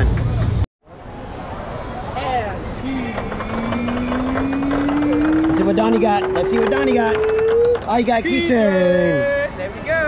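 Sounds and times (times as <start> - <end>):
tone rising in pitch: 3.2 - 8.1.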